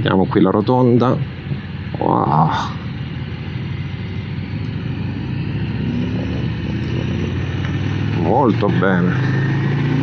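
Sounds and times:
motorcycle engine accelerating: 0.0 - 10.0
wind and road noise: 0.0 - 10.0.

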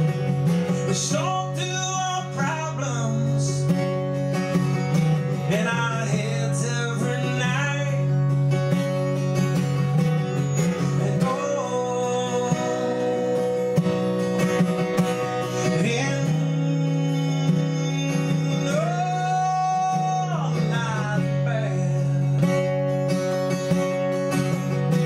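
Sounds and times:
acoustic guitar: 0.0 - 25.0
man singing: 0.7 - 3.9, 5.4 - 8.5, 10.2 - 14.2, 15.0 - 23.1.

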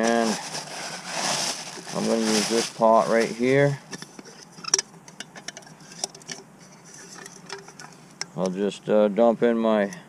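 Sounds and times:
camping pot clicking and knocking: 3.8 - 8.5.

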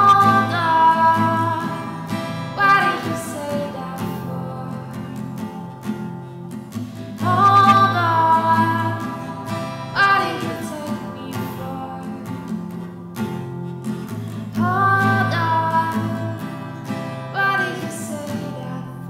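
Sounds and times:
woman singing wordless notes: 0.0 - 5.8, 7.2 - 12.5, 14.6 - 16.5, 17.3 - 19.0
acoustic guitar: 0.0 - 19.0.

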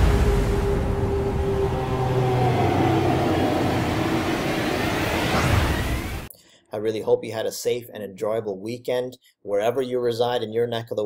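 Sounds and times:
long held tones: 0.0 - 6.2
deep rumble: 0.0 - 6.3.

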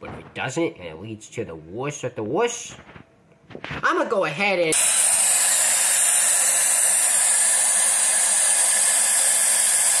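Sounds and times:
person speaking: 3.7 - 4.8.

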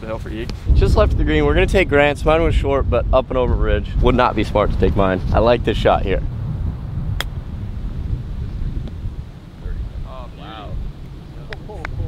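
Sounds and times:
wind rumble on microphone: 0.0 - 12.0
golf club striking ball: 7.2 - 7.4.

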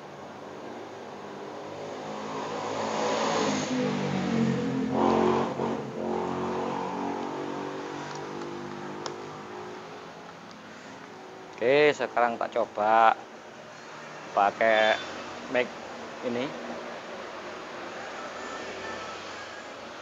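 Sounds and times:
vehicle engine passing: 1.6 - 10.2.

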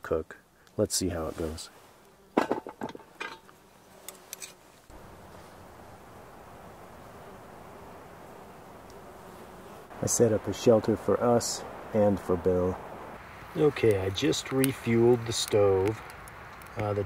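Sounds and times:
buzzing insects: 0.4 - 17.0.

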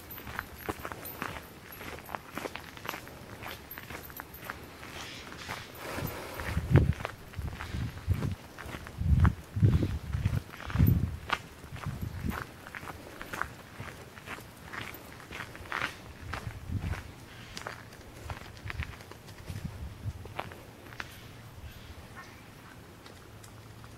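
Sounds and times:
gravel crunching: 0.0 - 23.9.

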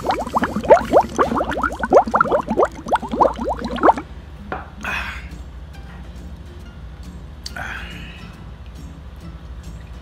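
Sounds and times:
person gulping juice: 0.0 - 4.1.

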